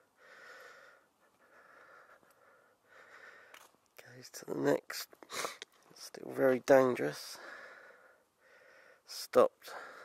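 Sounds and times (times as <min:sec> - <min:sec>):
faint breathing: 0:00.0 - 0:03.8, 0:07.3 - 0:09.1, 0:09.7 - 0:10.0.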